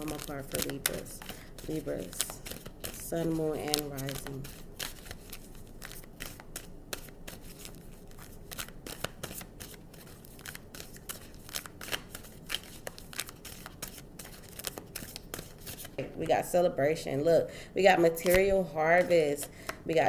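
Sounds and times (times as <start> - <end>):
cards being shuffled: 0.0 - 16.2, 18.1 - 19.2.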